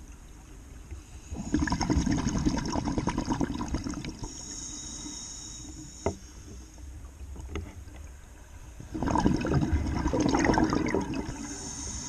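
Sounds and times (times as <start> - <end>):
air bubbles rushing underwater: 1.4 - 4.3, 8.9 - 11.6.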